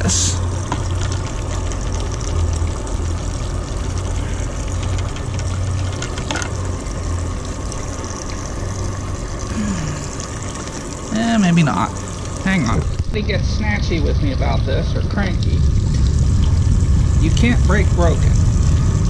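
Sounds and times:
low mechanical hum: 0:00.0 - 0:19.0.

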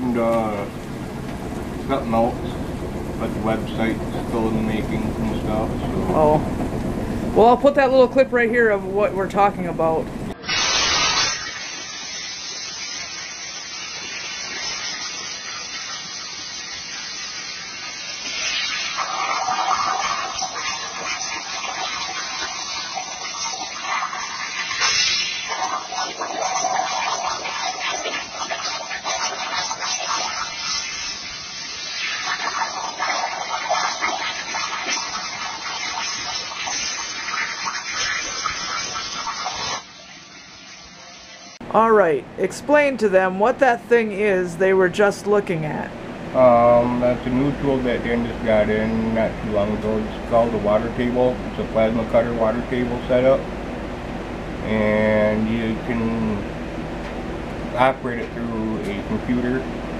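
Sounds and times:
water gurgling: 0:00.0 - 0:41.0
plasma arc hiss: 0:10.4 - 0:41.6.

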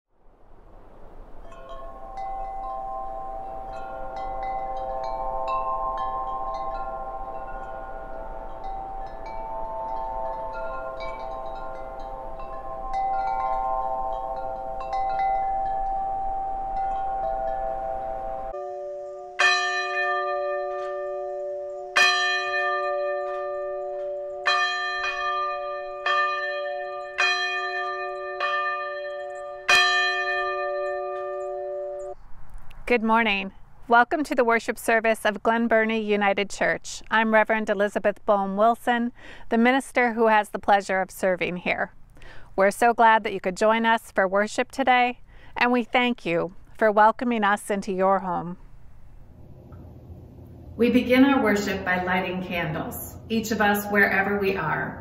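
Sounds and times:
wind chimes ringing: 0:01.3 - 0:32.3.

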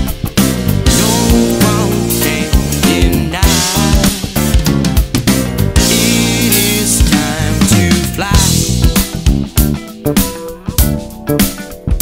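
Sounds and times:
drums: 0:00.0 - 0:12.0
electric bass line: 0:00.0 - 0:12.0
funk music: 0:00.0 - 0:12.0.

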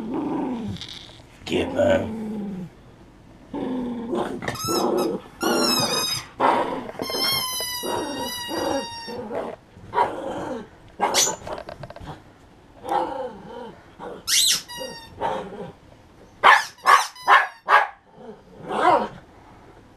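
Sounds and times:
small dog growling and barking: 0:00.0 - 0:02.8, 0:03.5 - 0:15.8, 0:16.4 - 0:19.3
dog squealing: 0:00.6 - 0:01.3, 0:04.4 - 0:09.6, 0:11.0 - 0:11.5, 0:14.2 - 0:15.4, 0:16.4 - 0:17.9.

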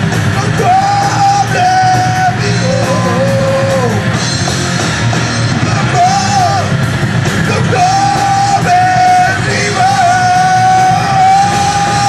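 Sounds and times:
drums: 0:00.0 - 0:12.0
electric guitars: 0:00.0 - 0:12.0.

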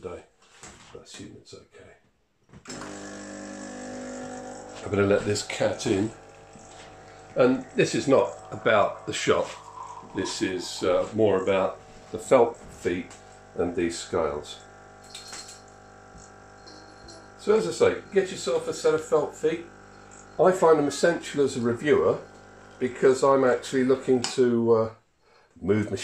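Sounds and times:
espresso machine pump humming: 0:02.7 - 0:24.3.

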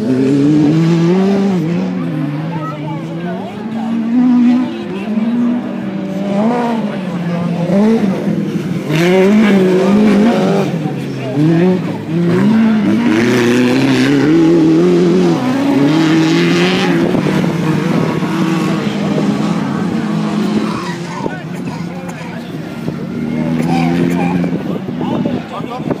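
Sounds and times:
racing car engines revving: 0:00.0 - 0:26.0.

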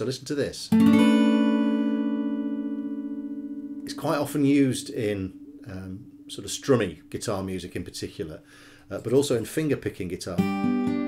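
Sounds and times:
acoustic guitar strummed chord: 0:00.8 - 0:06.3.

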